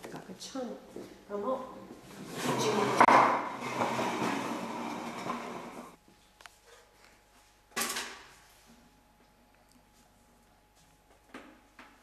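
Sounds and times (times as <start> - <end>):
furniture scraping on tiled floor: 1.9 - 6.0.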